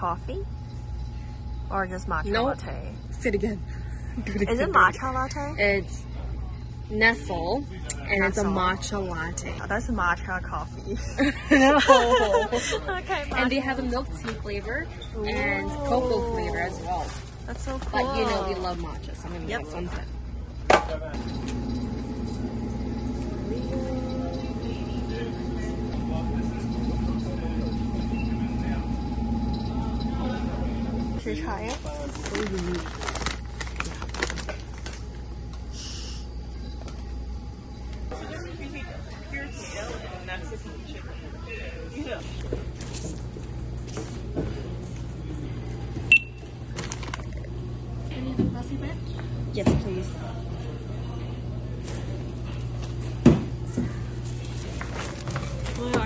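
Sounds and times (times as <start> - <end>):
low hum with faint whine: 0.0 - 56.0
voices: 1.6 - 37.2, 37.8 - 56.0
barcode scanner beep: 46.1 - 46.4.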